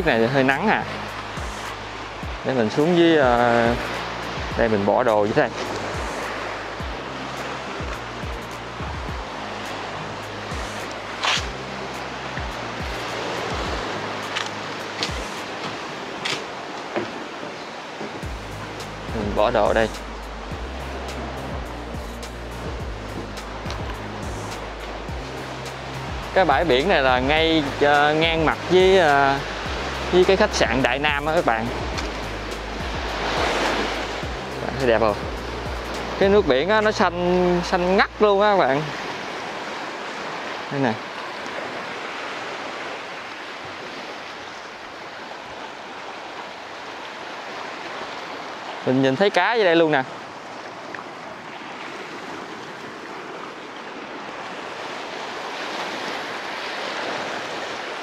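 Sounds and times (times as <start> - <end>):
background music with low beat: 0.0 - 2.5, 3.2 - 15.6, 18.2 - 38.2
surf breaking on rocky shore: 0.0 - 58.0.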